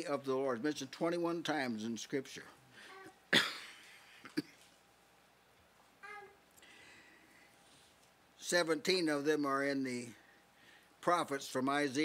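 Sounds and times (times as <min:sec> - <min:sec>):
man coughing: 0:03.3 - 0:04.6.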